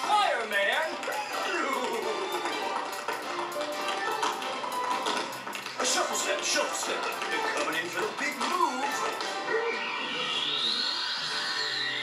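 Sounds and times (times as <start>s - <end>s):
tap-dance taps: 0.0s - 9.4s
upbeat accompaniment music: 0.0s - 10.4s.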